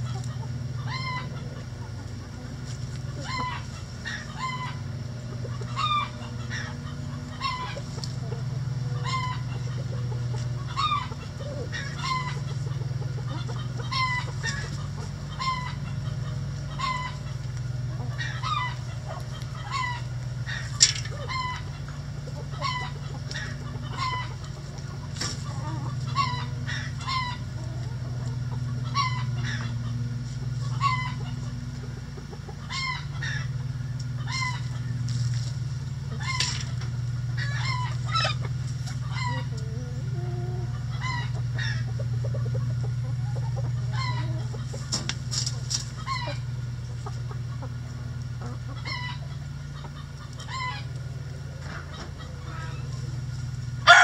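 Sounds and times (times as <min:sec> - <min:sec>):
chickens clucking: 0:00.0 - 0:54.0
steady low hum: 0:00.0 - 0:54.0.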